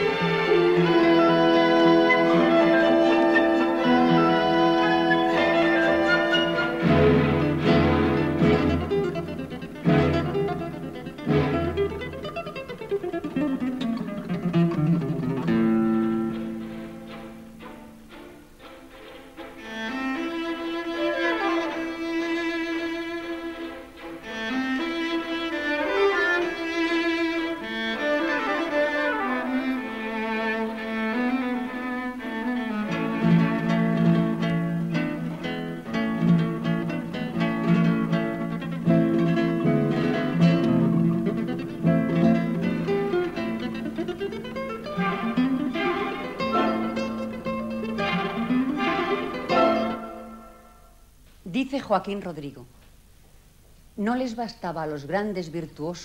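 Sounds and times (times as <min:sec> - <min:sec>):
string orchestra: 0:00.0 - 0:50.9
guitar: 0:00.0 - 0:51.6.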